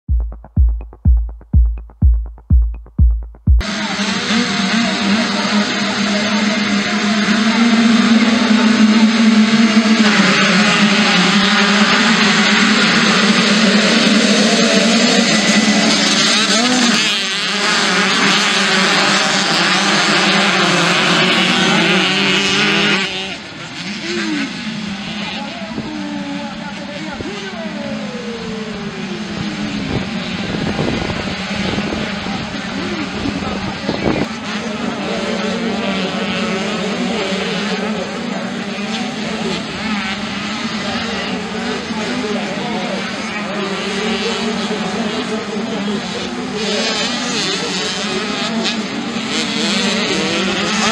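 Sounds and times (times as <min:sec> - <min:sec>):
dirt bikes revving together: 0:03.6 - 0:50.9
single bike accelerating and shifting: 0:08.5 - 0:27.6, 0:45.4 - 0:50.9.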